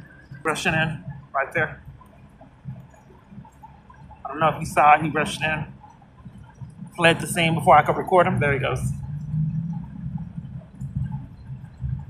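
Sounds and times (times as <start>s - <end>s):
city street rumble: 4.2s - 12.0s.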